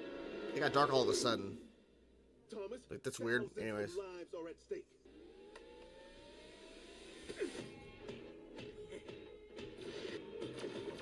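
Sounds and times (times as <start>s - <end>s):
clicks and whirring: 5.1s - 11.0s
rising mechanical whine: 5.1s - 11.0s.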